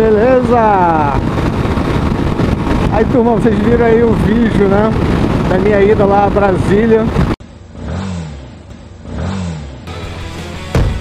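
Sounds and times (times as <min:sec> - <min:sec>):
motorcycle engine revving: 0:07.1 - 0:10.1.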